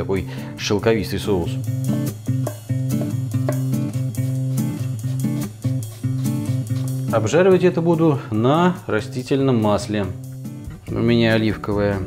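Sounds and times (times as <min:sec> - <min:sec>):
guitar-led instrumental music: 0:00.0 - 0:12.0.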